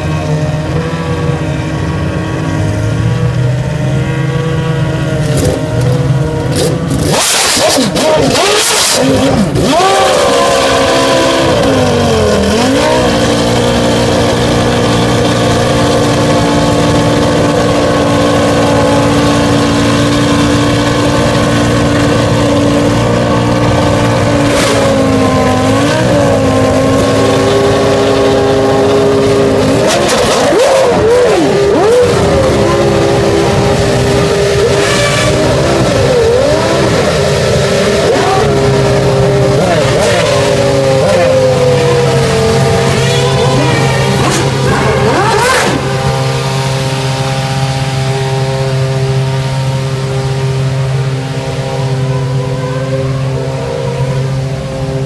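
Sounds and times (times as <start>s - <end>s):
engine throttle blips: 0.0s - 55.0s
racing car engines idling: 0.0s - 55.0s.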